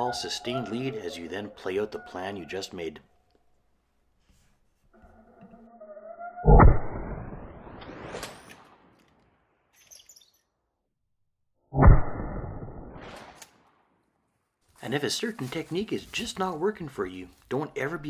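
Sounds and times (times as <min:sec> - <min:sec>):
rising whoosh: 0:05.8 - 0:08.9.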